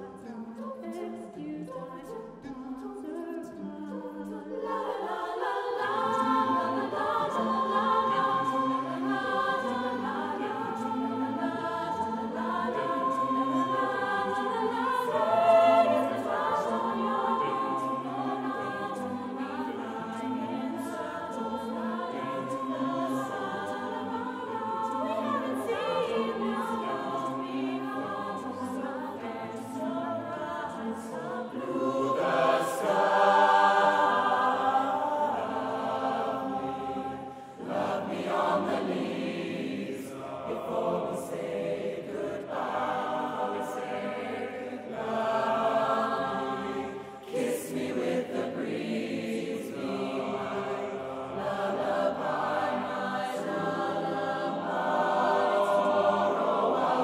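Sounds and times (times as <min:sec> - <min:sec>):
mixed choir singing a cappella: 0:00.0 - 0:57.0.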